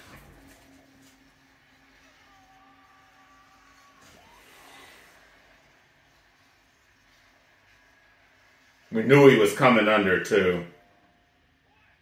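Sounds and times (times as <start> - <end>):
quiet low hum: 0.0 - 12.0.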